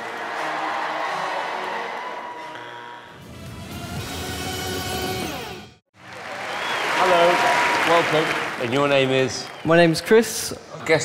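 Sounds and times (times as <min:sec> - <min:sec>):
audience applause: 0:00.0 - 0:02.5, 0:05.9 - 0:10.3.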